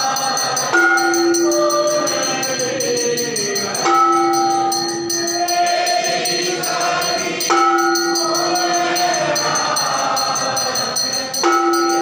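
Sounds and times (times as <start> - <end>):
group singing devotional song: 0.0 - 12.0
metal percussion ringing: 0.0 - 12.0.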